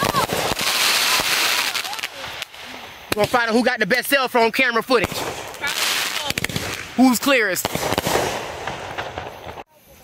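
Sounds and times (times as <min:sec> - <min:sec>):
firework bursting with crackles: 0:00.0 - 0:10.0.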